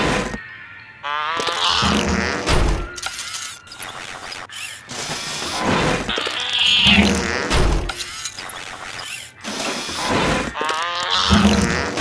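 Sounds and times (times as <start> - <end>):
mechanical whirring and ratcheting: 1.4 - 12.0.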